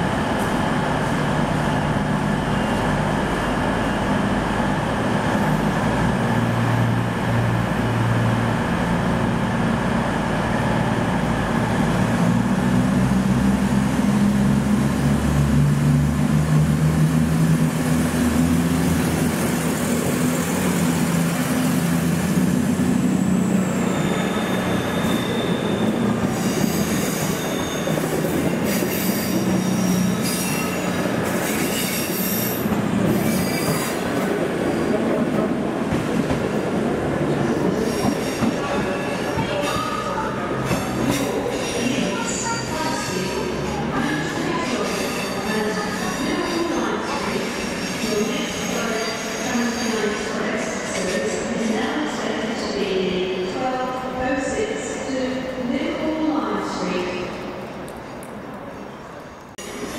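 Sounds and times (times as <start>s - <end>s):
train rolling rumble: 0.0s - 48.8s
diesel train engines droning: 0.0s - 59.9s
train wheels squealing: 23.1s - 34.1s, 44.8s - 51.2s.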